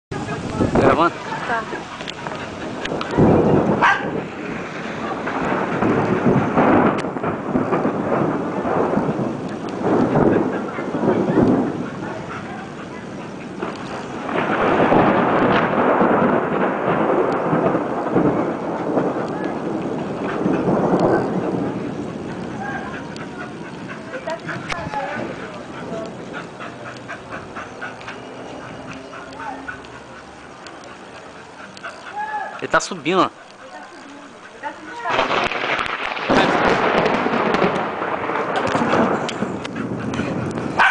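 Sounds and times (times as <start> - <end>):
loud rumbling: 0.1 - 32.4, 34.8 - 40.9
storm rushing: 0.1 - 40.9
distant dog barking: 3.7 - 4.3, 19.6 - 32.8, 38.1 - 40.9.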